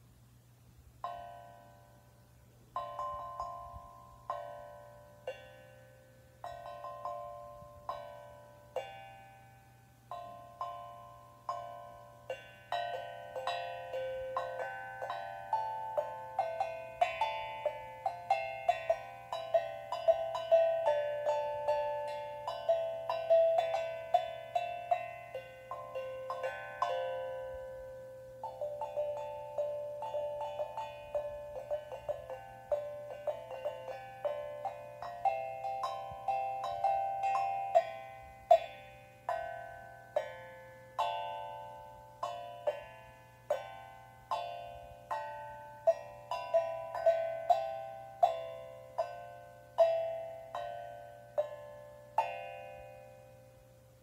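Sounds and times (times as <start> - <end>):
steel tongue drum melody: 0.9 - 54.0.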